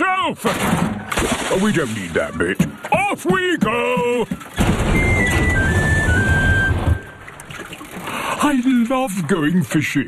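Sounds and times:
churning water: 0.5 - 10.0.

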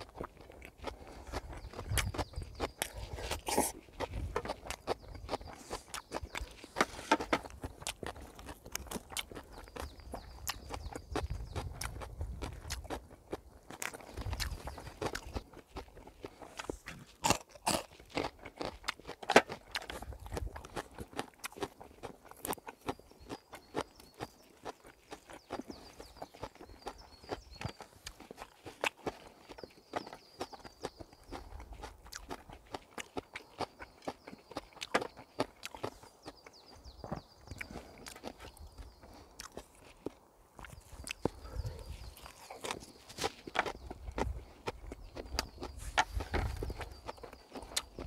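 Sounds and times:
person chewing and crunching: 0.0 - 48.0.

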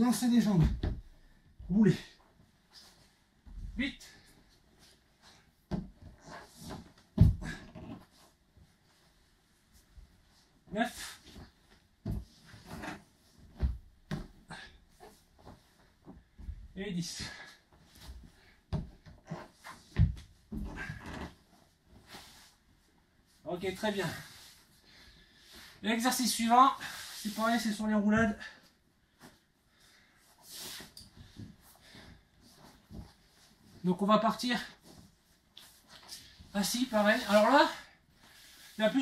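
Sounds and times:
body thudding on wooden floor: 5.7 - 8.0, 11.4 - 14.4, 18.1 - 21.4
cloth rustling: 34.7 - 39.0.

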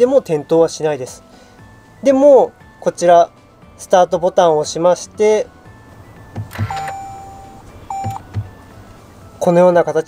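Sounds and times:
electronic beep: 6.4 - 8.4.

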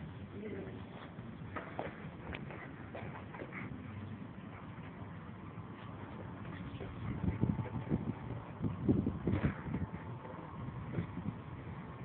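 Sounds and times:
steady background hiss: 0.0 - 12.0
dog scuffs and taps: 0.9 - 3.8.

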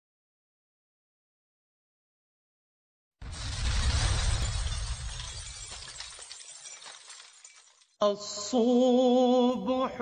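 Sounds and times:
crashing shattering burst: 3.2 - 8.0.

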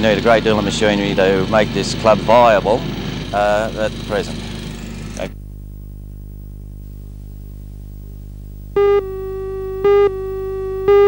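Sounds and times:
steady low hum: 0.0 - 11.0
loud electronic beep: 8.8 - 11.0.

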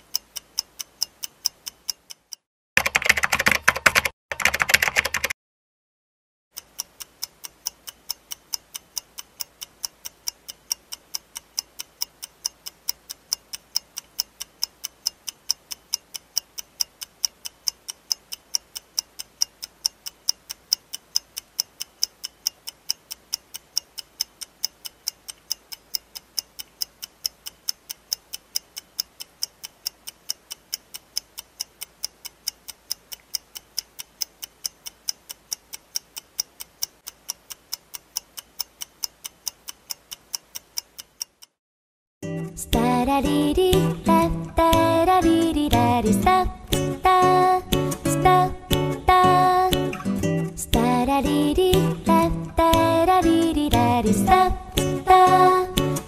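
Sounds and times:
clock ticking: 0.0 - 5.3, 6.5 - 41.6, 42.7 - 56.0.

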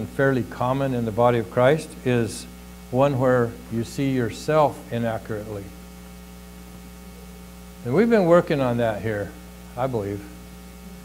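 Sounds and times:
man speaking: 0.0 - 5.8, 7.8 - 10.4
electrical mains hum: 0.0 - 11.0.

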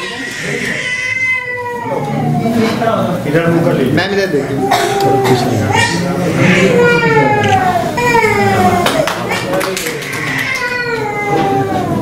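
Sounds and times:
adults talking: 0.0 - 12.0
small child crying: 10.1 - 12.0.

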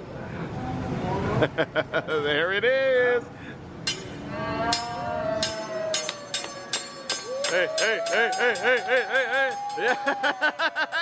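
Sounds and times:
metal spatula clacking on griddle: 3.9 - 10.2.

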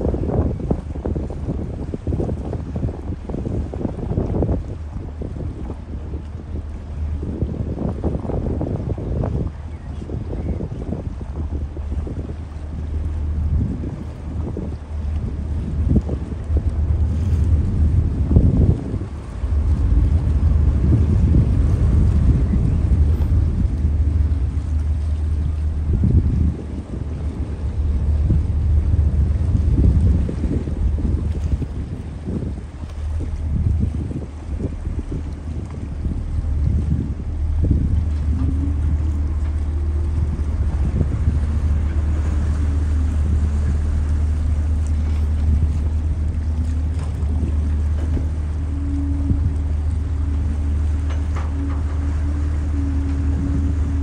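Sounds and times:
ship engine droning: 0.0 - 54.0
wind buffeting microphone: 0.0 - 54.0.

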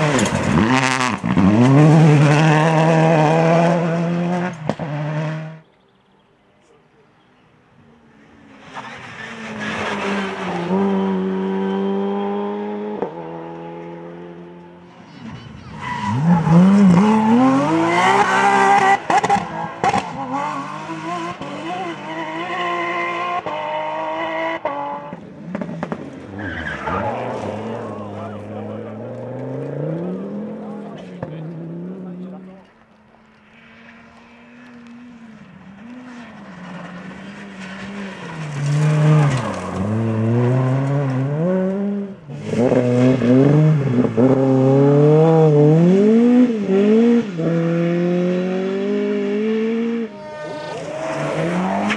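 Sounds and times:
rally car engines at full throttle: 0.0 - 51.9.

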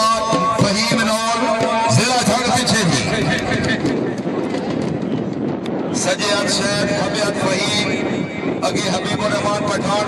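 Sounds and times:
hubbub of crowd: 0.0 - 10.0
steady rushing noise: 0.0 - 10.0.

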